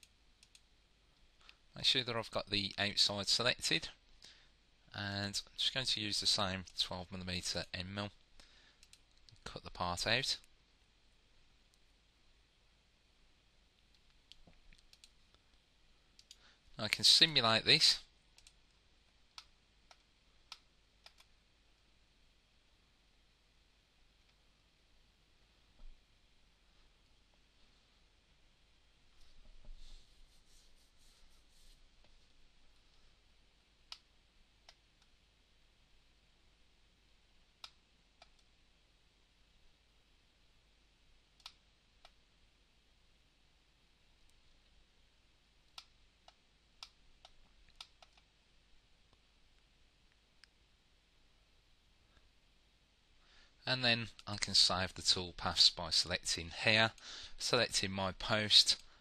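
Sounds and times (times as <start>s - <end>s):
computer mouse click: 19.4s - 21.3s, 45.7s - 48.3s.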